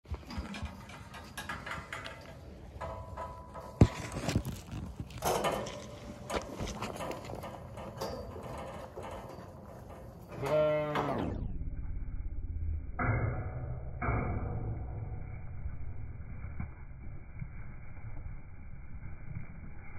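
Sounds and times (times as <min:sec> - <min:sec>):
metal gate clanking: 0:00.1 - 0:11.5
sheep bleating: 0:10.3 - 0:11.2.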